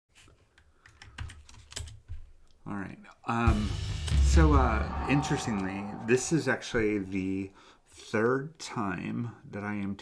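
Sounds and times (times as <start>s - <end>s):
computer keyboard typing: 0.8s - 2.0s.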